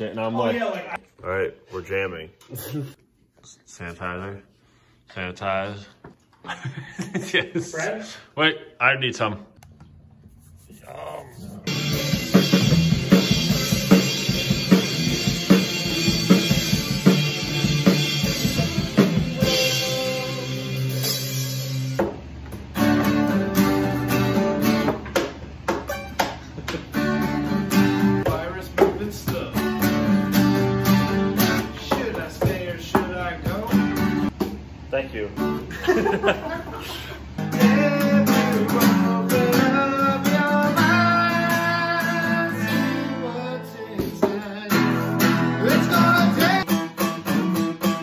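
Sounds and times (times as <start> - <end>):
acoustic guitars strummed together: 26.9 - 34.3, 37.4 - 48.0.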